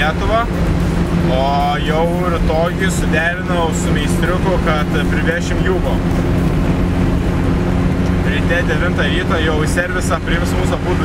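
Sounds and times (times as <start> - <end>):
car engine drone: 0.0 - 11.0
road and wind noise: 0.0 - 11.0.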